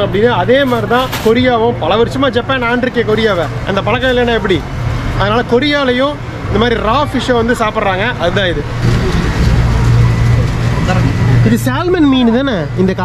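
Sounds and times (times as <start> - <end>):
low street hum: 0.0 - 13.0.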